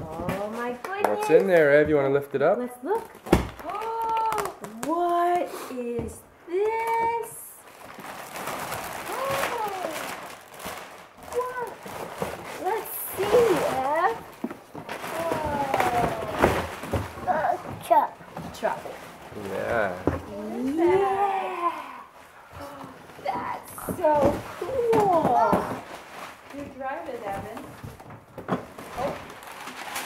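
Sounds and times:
plastic wrap and cardboard rustling: 0:00.0 - 0:30.0.

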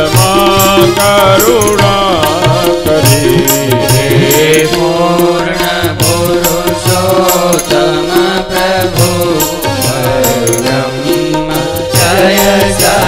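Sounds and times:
cymbal beats: 0:00.0 - 0:13.0
drum beats: 0:00.0 - 0:13.0
person singing: 0:00.0 - 0:13.0.

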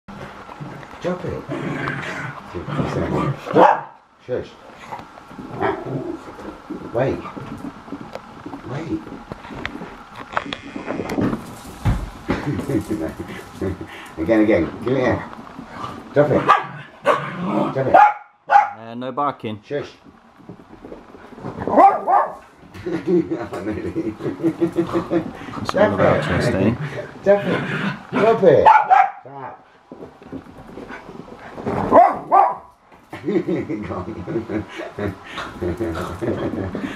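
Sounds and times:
dog paws clicking and scrabbling: 0:00.1 - 0:03.8, 0:04.6 - 0:16.8, 0:19.7 - 0:27.6, 0:29.9 - 0:36.9
dog barking: 0:03.6 - 0:04.0, 0:16.4 - 0:17.3, 0:17.9 - 0:18.8, 0:21.7 - 0:22.4, 0:28.6 - 0:29.3, 0:31.9 - 0:32.7.

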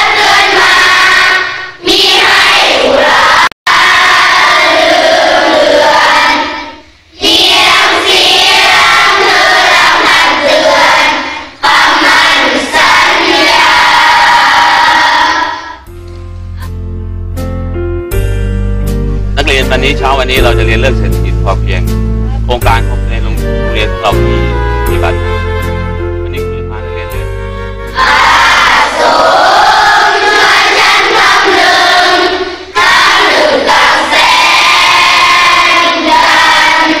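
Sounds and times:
children's voices in unison: 0:00.0 - 0:15.8, 0:28.0 - 0:37.0
large group singing loudly: 0:00.0 - 0:15.8, 0:27.9 - 0:37.0
instrumental music: 0:15.8 - 0:31.4.

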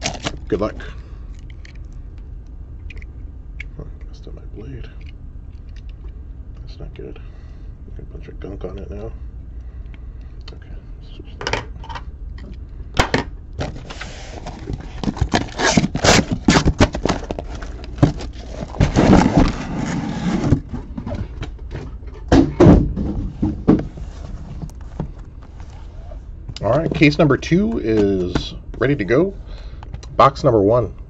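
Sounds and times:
cardboard and tape tearing: 0:13.8 - 0:20.6.

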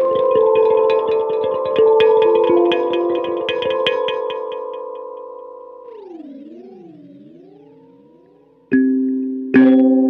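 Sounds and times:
kalimba tines plucked: 0:00.0 - 0:07.6, 0:08.7 - 0:10.0.

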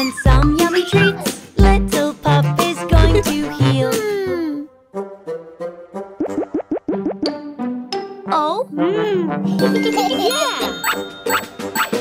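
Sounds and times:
bright chiming jingle: 0:09.6 - 0:12.0.

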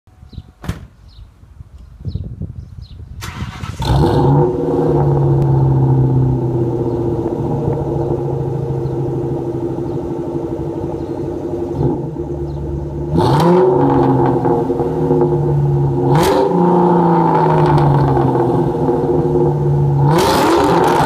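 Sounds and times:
car engine revving and idling: 0:03.2 - 0:21.0.

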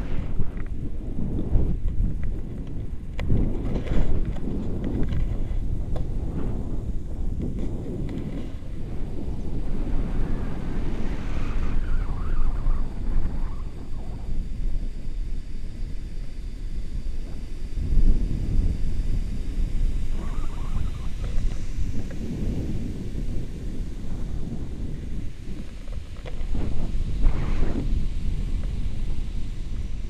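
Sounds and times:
wind rushing over microphone: 0:00.0 - 0:30.0.

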